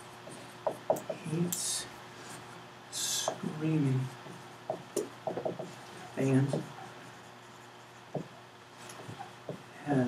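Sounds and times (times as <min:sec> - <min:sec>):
marker squeaking on whiteboard: 0:04.3 - 0:08.4, 0:09.0 - 0:09.6.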